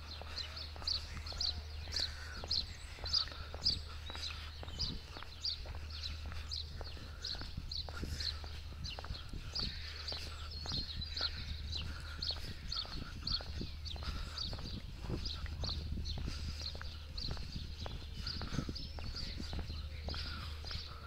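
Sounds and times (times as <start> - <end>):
footsteps on paving stones: 0.0 - 21.0
small birds chirping: 0.0 - 21.0
steady low rumble: 0.0 - 21.0.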